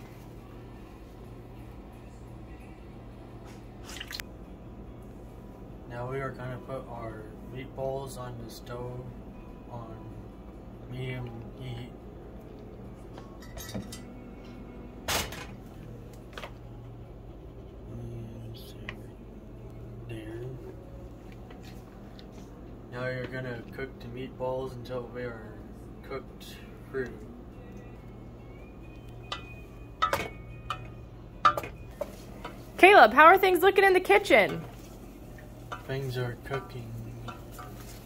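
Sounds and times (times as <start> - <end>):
steady low hum: 0.0 - 38.0
spoon clinking on saucepan: 29.2 - 31.8.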